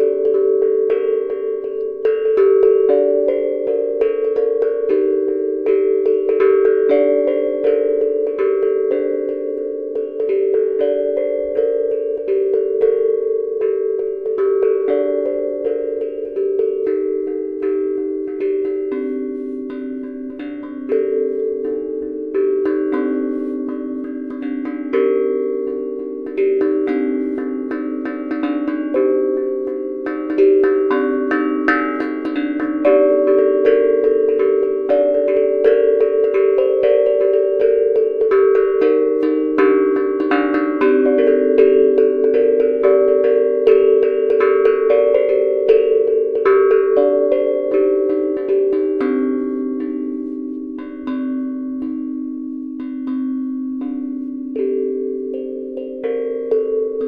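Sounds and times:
steel tongue drum melody: 0:00.0 - 0:57.0.

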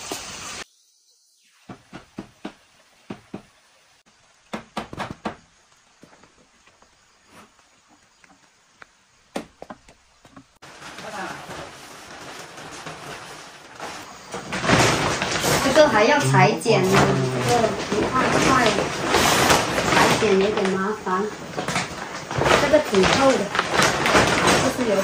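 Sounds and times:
footsteps knocking and scuffing: 0:04.5 - 0:10.6
steady rustling: 0:09.6 - 0:25.0.

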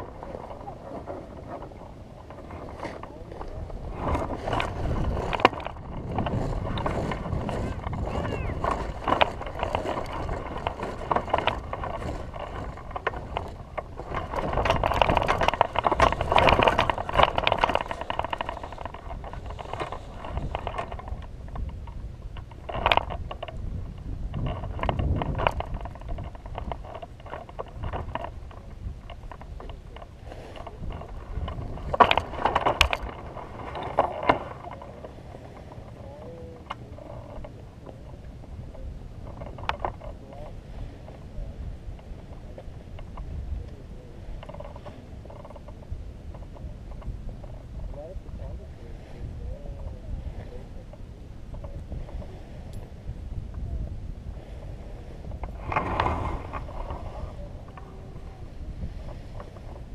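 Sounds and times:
air rushing over microphone: 0:00.0 - 0:39.3, 0:46.7 - 0:59.9.

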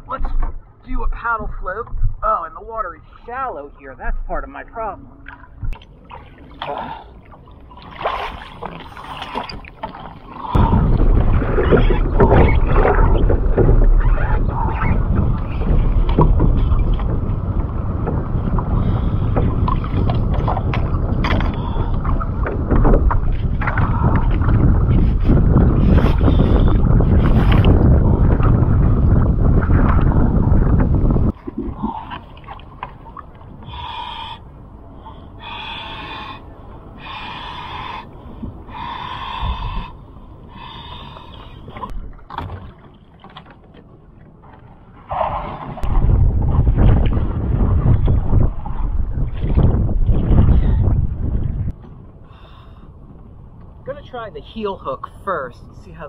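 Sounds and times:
water sloshing against kayak: 0:03.3 - 0:56.0
wind buffeting microphone: 0:05.2 - 0:42.8, 0:44.0 - 0:56.0.

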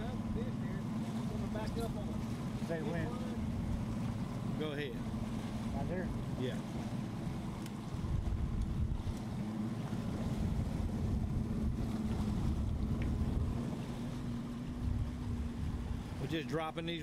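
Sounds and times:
boat motor humming: 0:00.0 - 0:17.0
choppy water washing: 0:00.0 - 0:17.0
wind buffeting microphone: 0:00.0 - 0:17.0.

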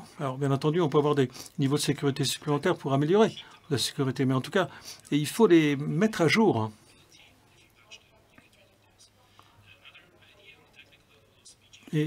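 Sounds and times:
faint indistinct speech: 0:06.9 - 0:12.0.

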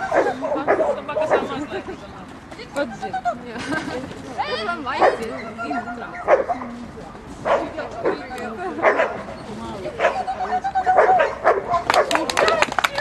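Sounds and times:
voices: 0:00.0 - 0:13.0.

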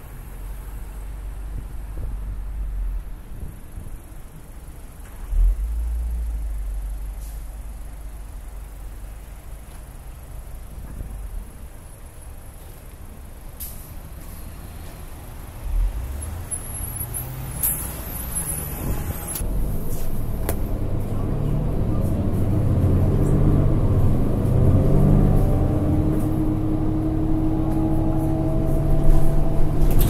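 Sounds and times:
bus diesel engine accelerating: 0:00.0 - 0:30.0
bus clicks: 0:18.8 - 0:21.2, 0:27.6 - 0:30.0.

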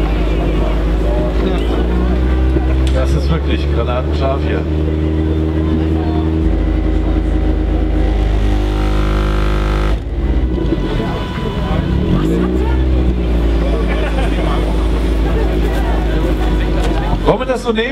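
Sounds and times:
bass-heavy music from subwoofer: 0:01.6 - 0:15.3.

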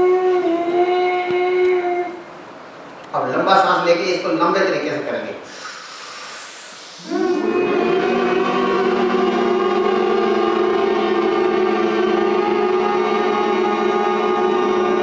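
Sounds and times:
man humming through nose: 0:05.7 - 0:15.0.

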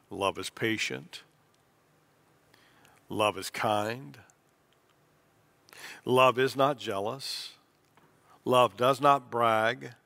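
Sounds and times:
man speaking: 0:00.1 - 0:01.3, 0:03.1 - 0:04.3, 0:08.5 - 0:10.0
intake of breath: 0:05.7 - 0:06.1.

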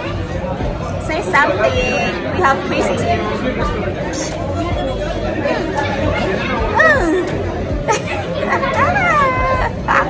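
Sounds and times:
background music: 0:00.0 - 0:10.0
restaurant chatter: 0:00.0 - 0:10.0.

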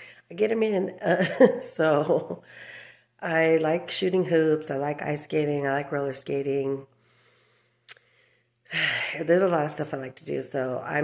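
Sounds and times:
woman speaking: 0:00.0 - 0:06.9, 0:08.7 - 0:11.0.

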